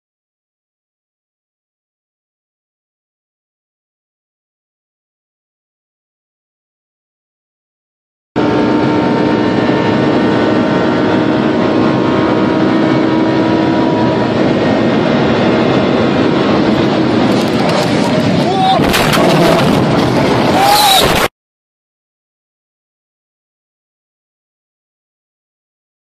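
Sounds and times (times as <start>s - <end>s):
car engine and wind noise: 8.4s - 21.3s
car crash bangs: 17.4s - 21.3s.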